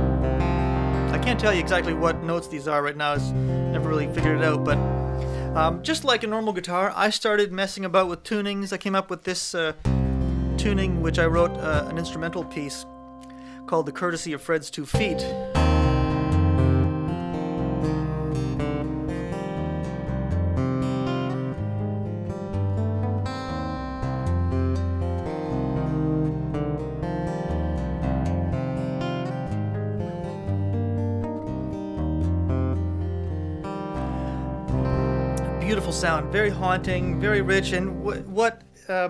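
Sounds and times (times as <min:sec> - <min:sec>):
low guitar bass notes: 0:00.0 - 0:06.4, 0:09.8 - 0:13.8, 0:14.9 - 0:38.8
plucked guitar melody: 0:00.0 - 0:07.1, 0:09.8 - 0:38.9.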